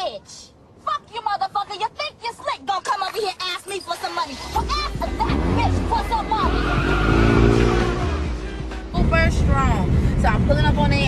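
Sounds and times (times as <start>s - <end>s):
voices: 0.0s - 11.0s
road rumble inside car: 2.8s - 11.0s
music: 2.9s - 11.0s
car engine revving: 4.3s - 11.0s.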